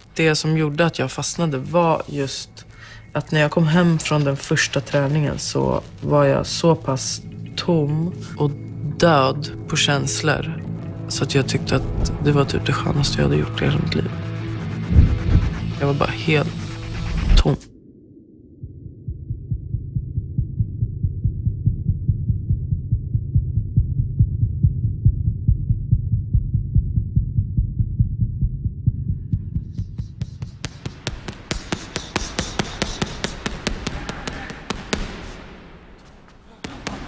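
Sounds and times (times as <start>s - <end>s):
low hum: 2.6s - 32.8s
deep muffled pulse: 11.6s - 32.9s
boxing gloves striking pads: 30.4s - 37.0s.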